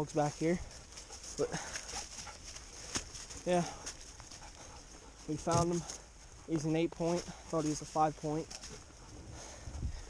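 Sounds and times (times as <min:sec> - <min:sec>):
dog sounds: 0:01.0 - 0:02.6.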